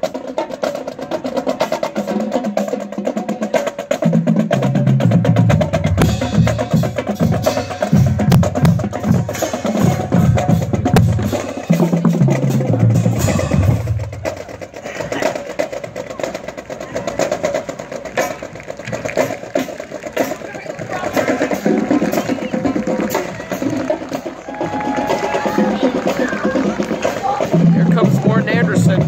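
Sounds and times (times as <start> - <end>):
crowd chatter: 0.0 - 29.0
marching drumline playing: 0.0 - 29.0.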